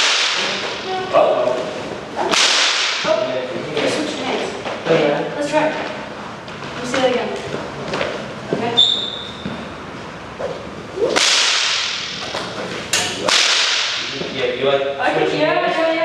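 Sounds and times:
whip cracks: 0:00.0 - 0:00.8, 0:02.3 - 0:03.1, 0:11.1 - 0:12.2, 0:13.2 - 0:14.1
whip swishing: 0:00.0 - 0:00.8, 0:02.3 - 0:03.1, 0:11.1 - 0:12.2, 0:13.2 - 0:14.1
high squeak: 0:08.8 - 0:09.5.

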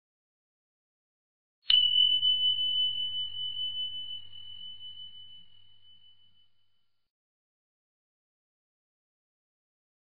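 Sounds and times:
bell ding: 0:01.7 - 0:07.0.

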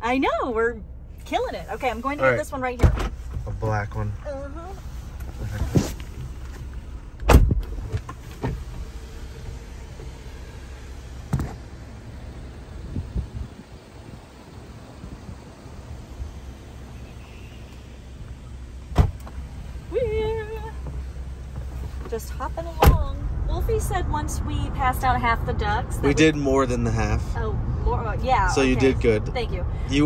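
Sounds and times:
diesel engine idling: 0:00.0 - 0:02.8, 0:06.2 - 0:30.0
car door thumps: 0:02.7 - 0:03.4, 0:07.2 - 0:10.2, 0:11.2 - 0:11.7, 0:18.8 - 0:19.5, 0:20.5 - 0:23.2.

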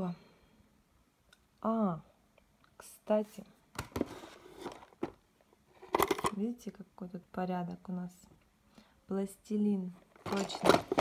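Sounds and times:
pencils rustling: 0:03.9 - 0:06.3, 0:09.9 - 0:11.0.

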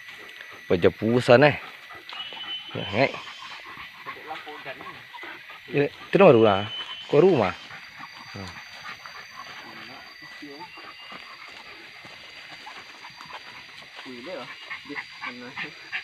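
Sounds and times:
dogs whining and yelping: 0:01.3 - 0:16.0.

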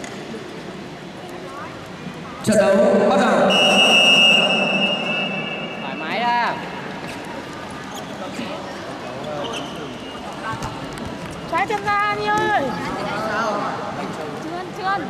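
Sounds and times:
background chatter: 0:00.0 - 0:15.0
high-pitched signal tone: 0:03.3 - 0:06.1.

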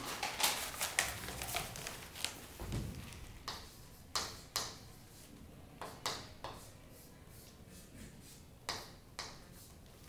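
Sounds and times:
chalk tapping on chalkboard: 0:02.7 - 0:10.0.

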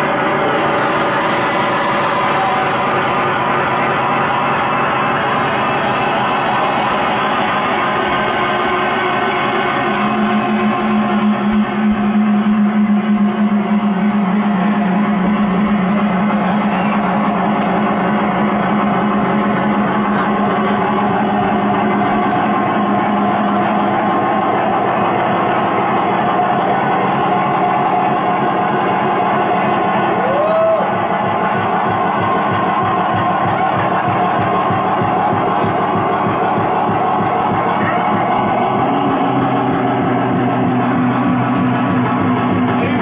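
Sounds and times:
distorted electronic noise music: 0:00.0 - 0:43.0
steady low tone: 0:00.0 - 0:43.0.

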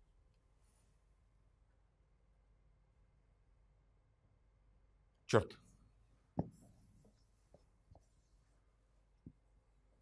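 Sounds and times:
marker writing on a whiteboard: 0:06.4 - 0:09.6.

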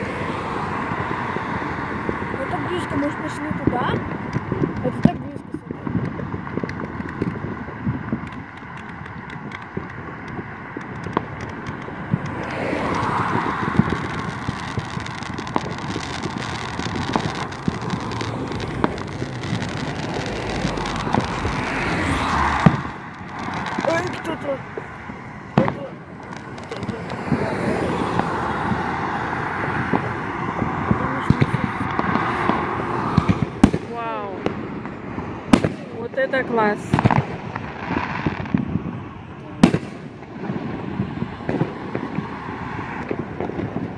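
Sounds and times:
cars passing: 0:00.0 - 0:43.9
distant fireworks popping: 0:00.0 - 0:43.9.

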